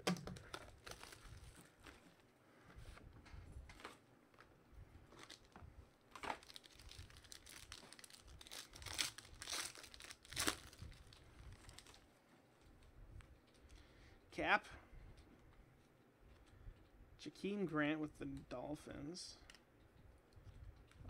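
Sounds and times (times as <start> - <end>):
foil pack crinkling: 0.0 - 2.1, 5.1 - 12.1
foil pack tearing: 6.2 - 12.0.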